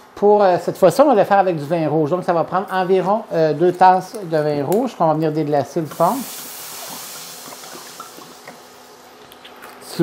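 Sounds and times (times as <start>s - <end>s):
wine sizzling in hot pan: 5.8s - 9.2s.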